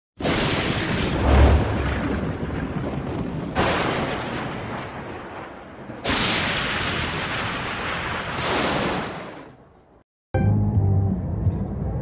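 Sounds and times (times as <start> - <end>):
thunderclap: 0.2 - 9.6.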